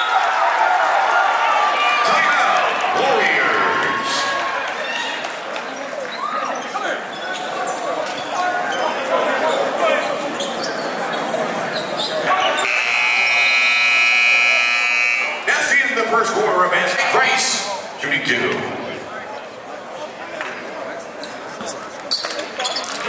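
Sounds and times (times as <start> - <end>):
crowd voices in gym: 0.0 - 23.0
scoreboard buzzer: 12.6 - 15.5.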